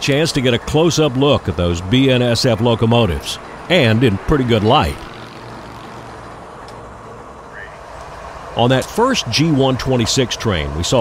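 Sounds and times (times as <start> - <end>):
diesel locomotives rumbling: 0.0 - 11.0.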